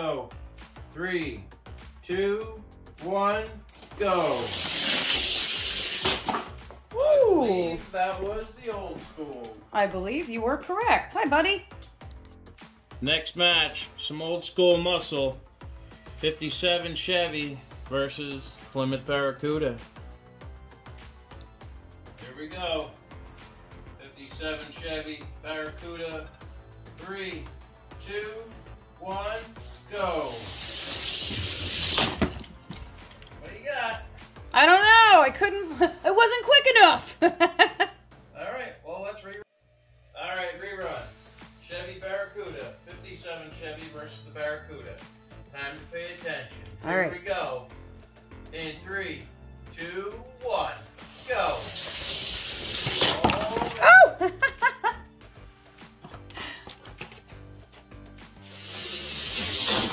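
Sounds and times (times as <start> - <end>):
toy car wheels whirring on track: 4.3 - 6.2, 30.2 - 32.2, 51.1 - 53.2, 58.4 - 59.9.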